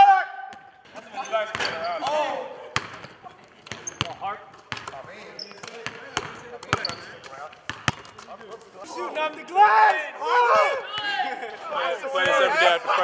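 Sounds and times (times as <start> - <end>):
basketballs bouncing on hardwood: 2.8 - 8.3.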